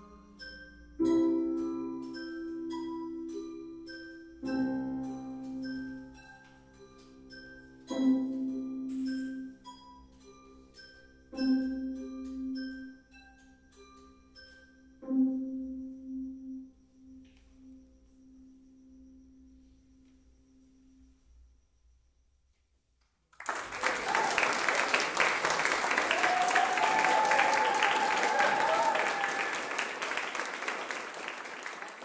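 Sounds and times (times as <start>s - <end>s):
audience applause: 23.4s - 32.0s.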